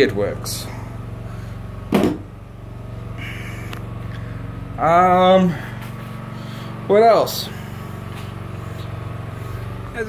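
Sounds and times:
generator humming: 0:00.0 - 0:10.0
sharp knock: 0:01.9 - 0:02.3.

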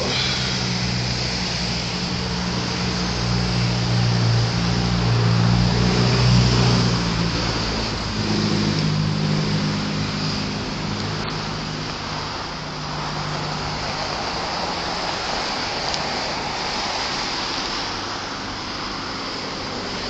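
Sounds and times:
car traffic passing: 0:00.0 - 0:20.0.

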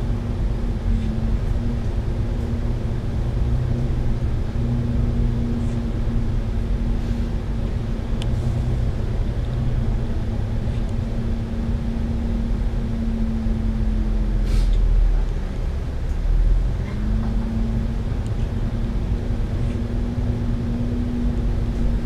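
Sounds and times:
bus engine drone: 0:00.0 - 0:22.0
low road rumble: 0:00.0 - 0:22.0.

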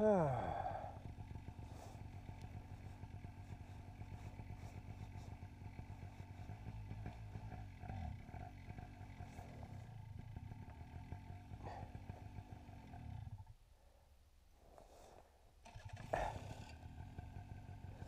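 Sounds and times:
paramotor engine idling: 0:00.0 - 0:13.5, 0:15.6 - 0:18.0.

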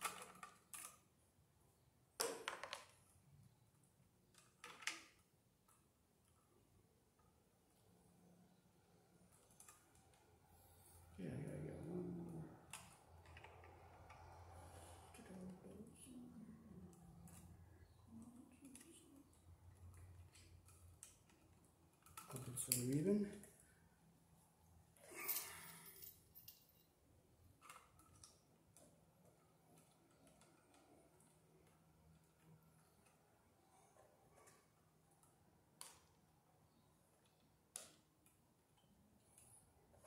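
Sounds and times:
man talking in a low voice: 0:11.2 - 0:12.5, 0:22.3 - 0:23.5.

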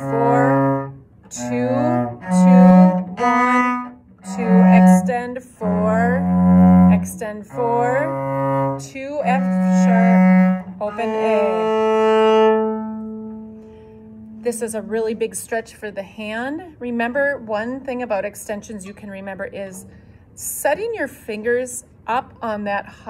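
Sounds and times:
bowed cello low notes: 0:00.0 - 0:15.3.

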